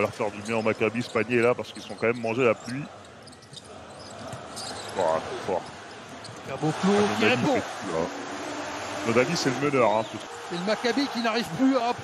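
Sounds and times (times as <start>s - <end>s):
arena crowd noise: 2.0s - 12.0s.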